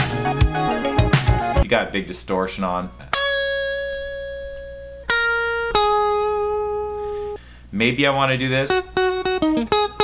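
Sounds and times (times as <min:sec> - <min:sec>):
distorted electric guitar: 0:00.0 - 0:01.6, 0:03.0 - 0:07.4, 0:08.7 - 0:10.0.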